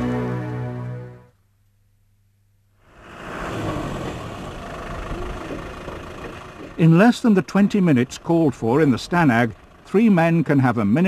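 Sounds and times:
vehicle engine running: 0:02.8 - 0:11.0.

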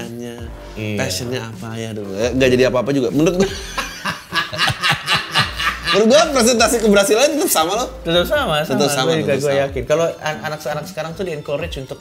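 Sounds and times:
man laughing hard: 0:03.4 - 0:06.3.

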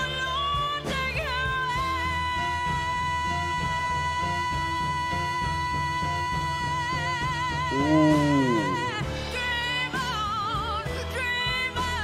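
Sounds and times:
piano: 0:00.0 - 0:12.0
upright bass: 0:00.0 - 0:12.0.

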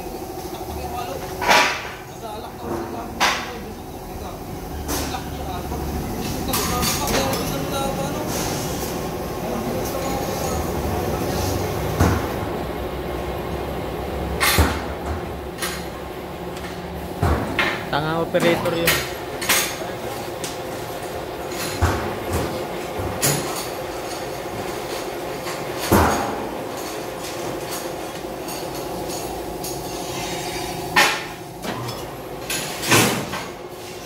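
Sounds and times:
steady machine hum: 0:00.0 - 0:34.0.

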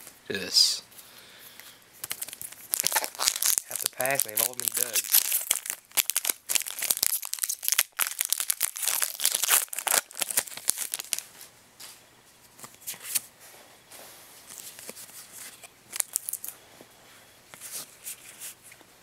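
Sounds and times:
cards rustling: 0:02.0 - 0:11.2
foil wrapper tearing and crinkling: 0:02.0 - 0:11.2, 0:15.9 - 0:16.5.

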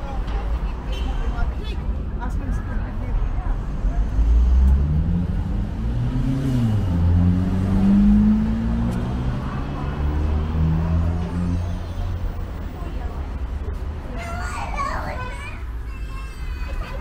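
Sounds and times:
low hum of traffic: 0:00.0 - 0:17.0
car engine accelerating: 0:04.1 - 0:11.8.

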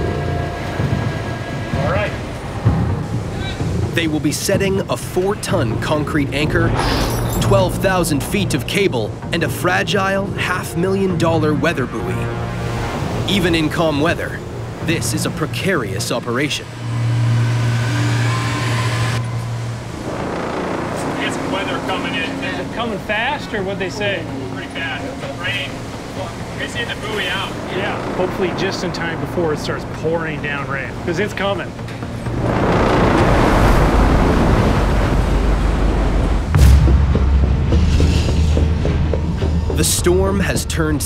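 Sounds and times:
machinery humming: 0:00.0 - 0:06.6, 0:08.9 - 0:39.9
background music drone: 0:00.0 - 0:41.0
ship engine rumble: 0:00.0 - 0:41.0.

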